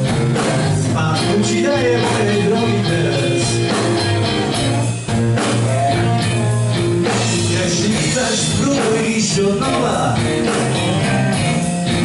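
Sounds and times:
drum kit: 0:00.0 - 0:12.0
electric guitars: 0:00.0 - 0:12.0.

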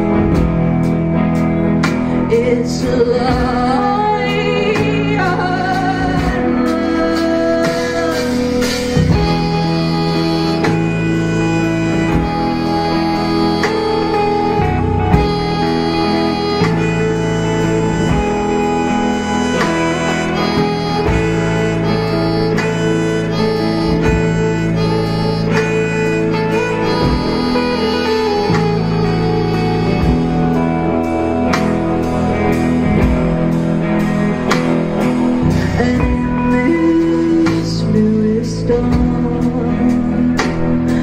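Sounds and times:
rock band playing: 0:00.0 - 0:41.0.

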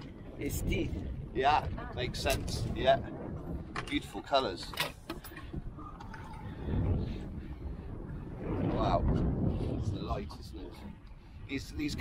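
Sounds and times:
boat engine rumble: 0:00.0 - 0:12.0.

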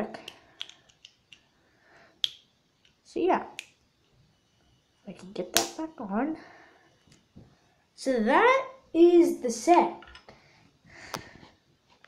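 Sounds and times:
plastic pieces clicking: 0:00.2 - 0:01.4.

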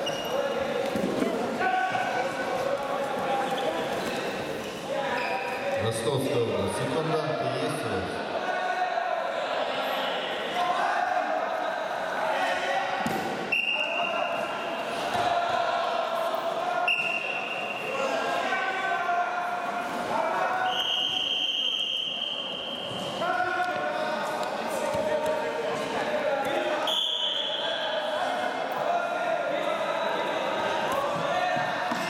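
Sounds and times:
voices calling out echoing: 0:00.0 - 0:32.0.

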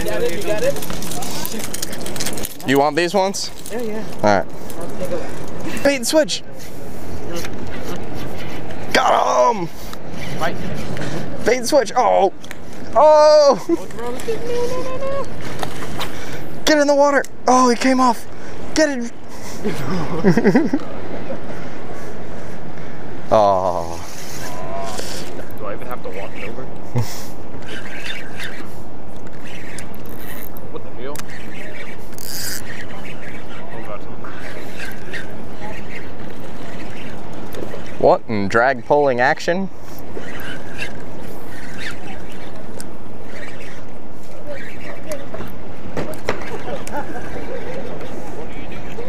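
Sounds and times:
faint voices: 0:00.0 - 0:16.6, 0:39.7 - 0:49.0
person exclaiming oh: 0:13.0 - 0:15.3.

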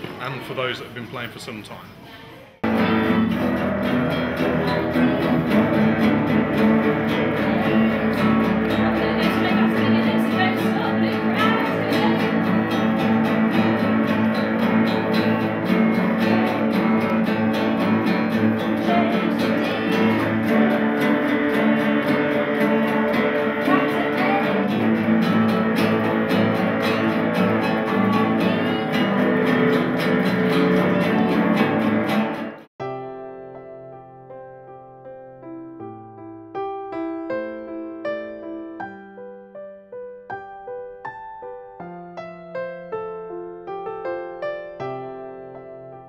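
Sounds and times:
guitar ensemble playing: 0:02.6 - 0:32.7
piano music: 0:02.6 - 0:46.0.

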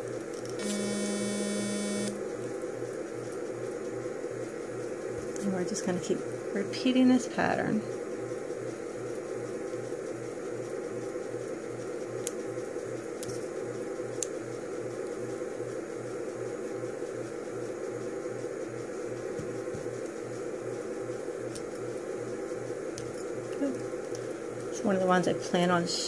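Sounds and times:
mechanical hum with low throb: 0:00.0 - 0:26.0.

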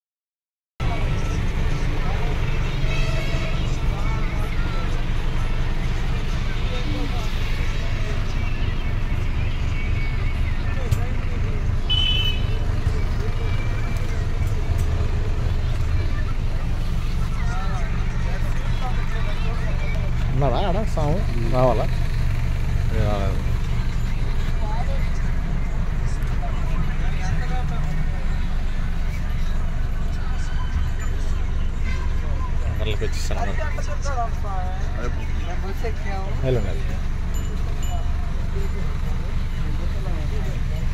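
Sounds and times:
bus engine rumble: 0:00.8 - 0:40.9
faint voices: 0:00.8 - 0:40.9
passengers talking: 0:00.8 - 0:40.9
road noise: 0:00.8 - 0:40.9
music: 0:01.2 - 0:11.6.

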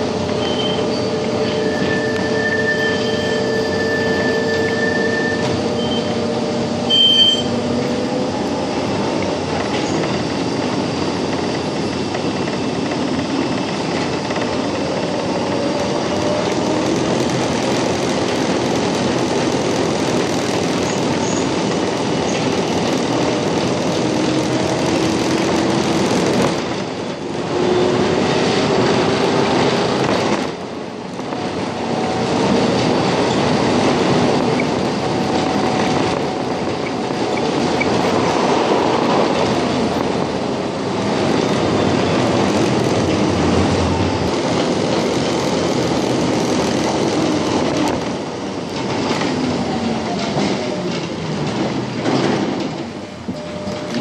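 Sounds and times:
tram wheels rumbling on rails: 0:00.0 - 0:54.0.

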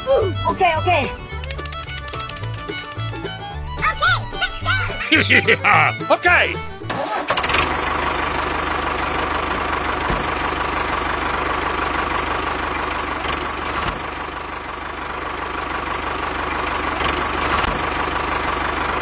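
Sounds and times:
tractor engine running: 0:00.0 - 0:19.0.

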